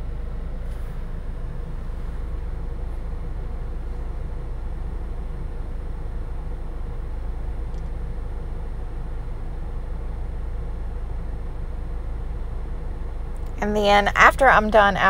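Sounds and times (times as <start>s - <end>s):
low background rumble: 0.0s - 15.0s.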